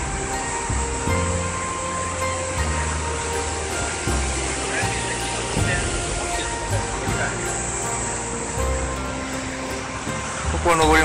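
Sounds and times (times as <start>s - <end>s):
background music with low bass: 0.0s - 11.0s
steady noise wash: 0.0s - 11.0s.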